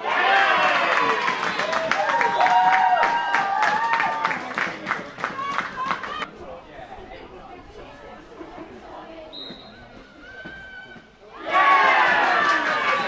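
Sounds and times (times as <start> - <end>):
crowd cheering and shouting: 0.0 - 6.3, 10.1 - 13.0
crowd chatter: 0.0 - 13.0.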